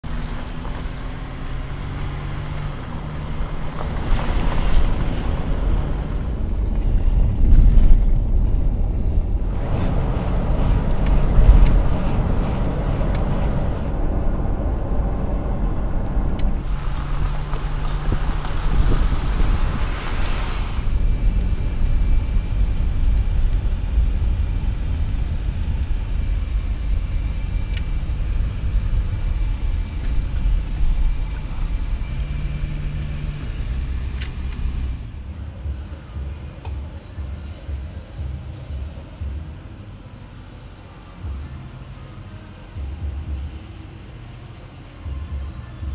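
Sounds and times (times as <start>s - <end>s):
car engine and road noise: 0.0s - 45.9s.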